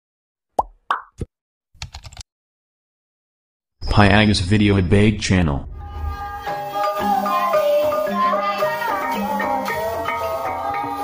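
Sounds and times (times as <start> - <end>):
keyboard typing clicks: 1.8 - 2.2.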